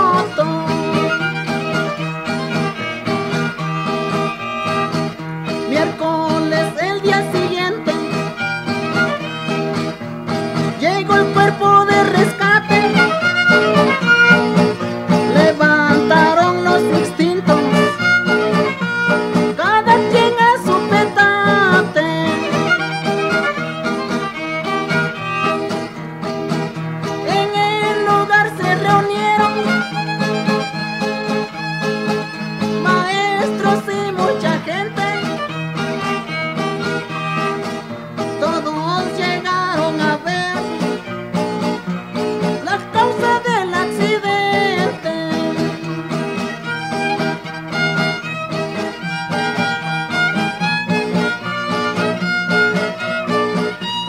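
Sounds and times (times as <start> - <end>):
strummed guitar: 0.0 - 54.0
violin melody: 0.0 - 54.0.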